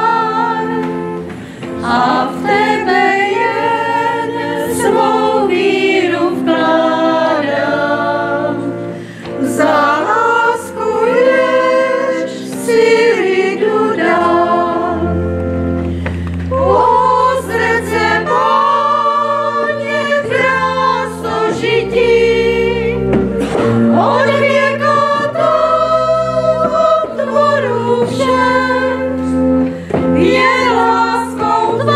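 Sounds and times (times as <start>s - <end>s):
women singing a hymn: 0.0s - 31.9s.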